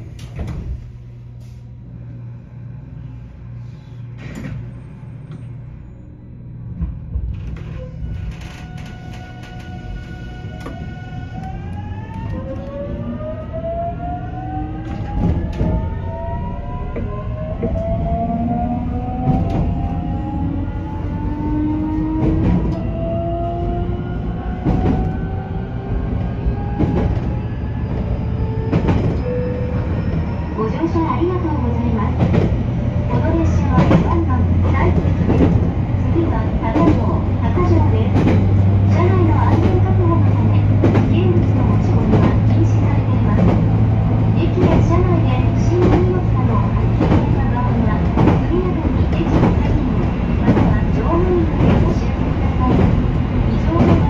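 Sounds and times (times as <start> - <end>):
train running rumble: 0.0 - 54.0.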